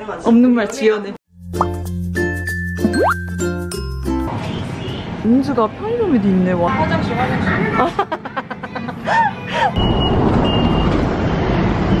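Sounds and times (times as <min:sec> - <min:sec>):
short high electronic beep: 0:02.8 - 0:03.3
bus passing by: 0:04.3 - 0:12.0.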